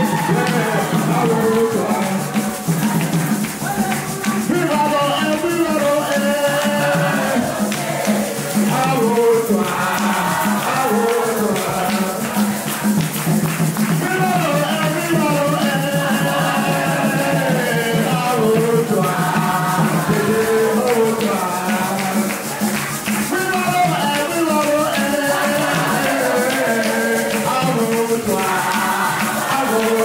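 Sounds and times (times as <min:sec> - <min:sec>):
lead singer on microphone: 0:00.0 - 0:02.8, 0:03.7 - 0:07.6
congregation singing: 0:00.0 - 0:30.0
hand drum beating: 0:00.0 - 0:30.0.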